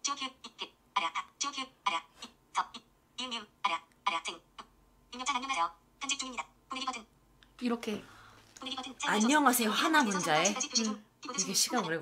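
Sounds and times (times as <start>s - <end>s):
synthesized speech from phone: 5.1s - 7.1s.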